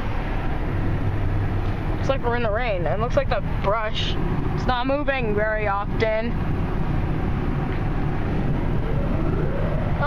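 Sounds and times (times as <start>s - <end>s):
car wash machinery rumble: 0.0s - 10.0s
faint rising whine: 5.4s - 10.0s.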